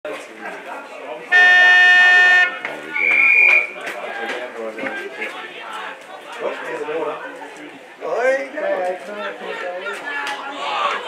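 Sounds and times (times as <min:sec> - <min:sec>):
voices chattering: 0:00.1 - 0:11.0
buzzing siren horn: 0:01.3 - 0:02.6
short whistle blast: 0:02.9 - 0:03.7.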